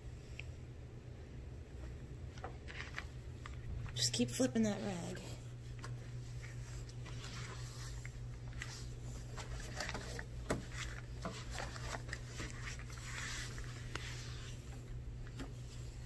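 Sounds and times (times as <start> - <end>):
cloth rubbing on plastic: 4.7 - 15.0.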